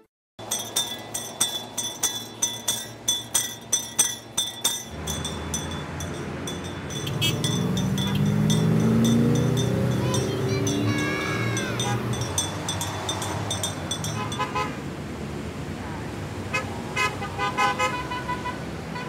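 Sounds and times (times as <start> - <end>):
road traffic: 0.0 - 19.0
bell ringing rhythmically: 0.4 - 14.6
car engines pulling away: 4.9 - 17.3.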